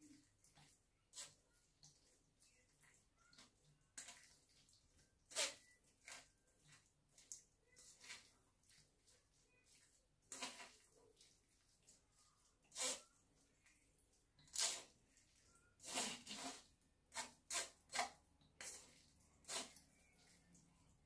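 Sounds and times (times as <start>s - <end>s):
metal spoon scraping mesh sieve: 5.3s - 6.3s, 10.2s - 10.9s, 12.6s - 13.2s, 14.4s - 15.0s, 15.8s - 20.2s.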